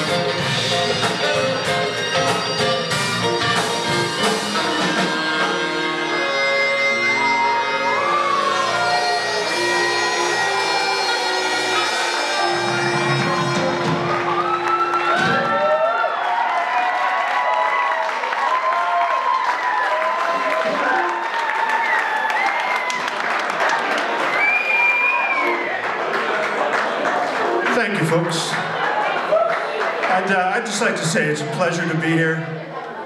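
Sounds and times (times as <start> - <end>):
band with bagpipes: 0.0 - 15.7
cheers and whoops: 7.2 - 11.9, 14.1 - 26.2, 28.8 - 29.8
audience applauding: 7.5 - 31.2.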